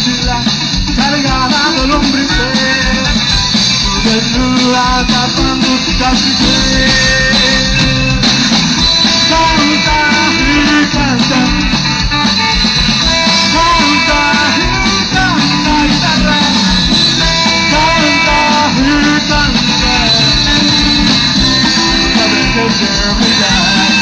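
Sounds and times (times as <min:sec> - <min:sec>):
loud rock band music: 0:00.0 - 0:24.0.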